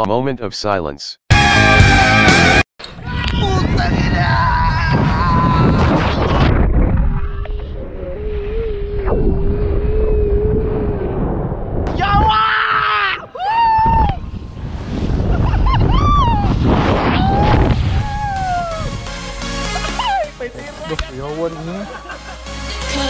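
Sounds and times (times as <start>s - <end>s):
person yelling and screaming: 1.4s - 6.2s, 12.0s - 14.2s, 17.1s - 18.9s
wind buffeting microphone: 2.9s - 19.0s.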